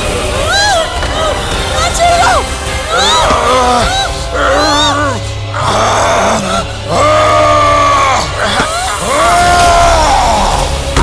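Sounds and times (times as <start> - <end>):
dramatic background music: 0.0 - 11.0
strained cries and groans: 2.8 - 11.0.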